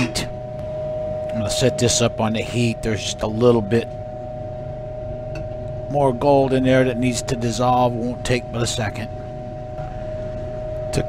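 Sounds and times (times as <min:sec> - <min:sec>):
fan humming: 0:00.0 - 0:11.0.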